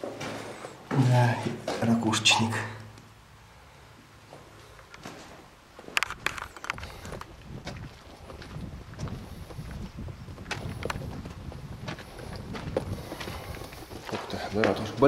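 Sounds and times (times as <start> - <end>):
footsteps on rock: 5.0 - 15.0.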